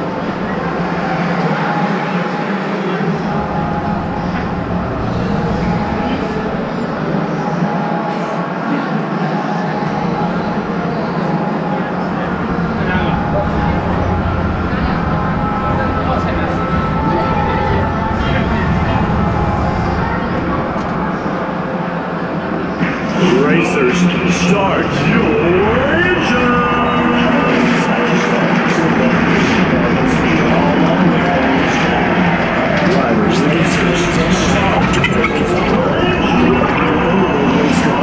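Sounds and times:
steady low hum: 0.0 - 1.6, 2.8 - 8.0, 9.8 - 38.0
indistinct voices and chatter: 0.0 - 38.0.

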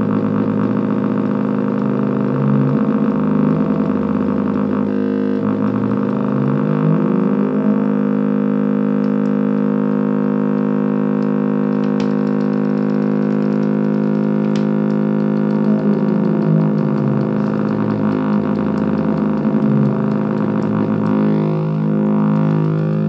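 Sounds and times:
buzzy electronic synth drone: 0.0 - 23.0.

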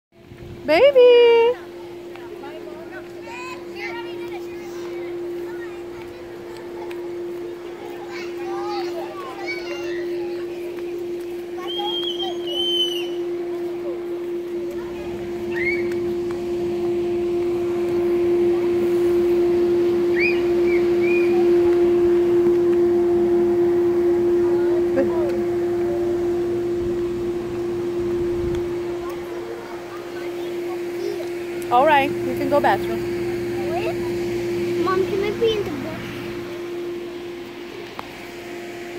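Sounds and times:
children chattering and calling: 0.2 - 21.8, 28.6 - 38.2
steady hum: 0.2 - 38.9.

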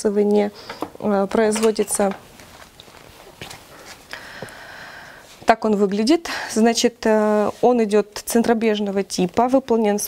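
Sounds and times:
paper catalogue rustling: 1.2 - 4.1.

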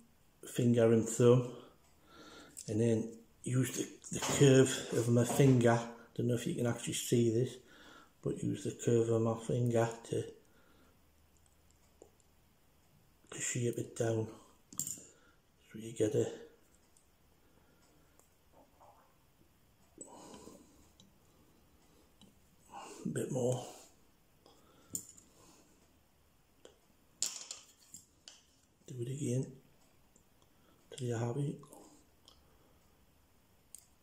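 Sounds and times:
small metal tools clicking: 14.7 - 15.1
faint small clicks: 33.6 - 34.0.

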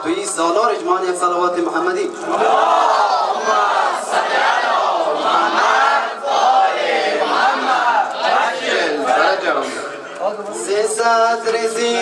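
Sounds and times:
crowd chanting: 2.2 - 10.2.

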